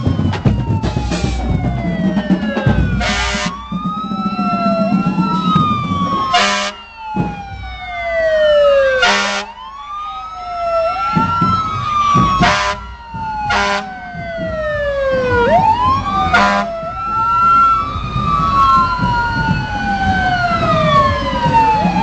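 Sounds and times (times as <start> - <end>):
fire engine siren wailing: 0.0 - 22.0
truck horn blasts: 3.0 - 3.6, 6.4 - 6.8, 9.0 - 9.5, 12.4 - 12.8, 13.5 - 13.9, 16.3 - 16.7.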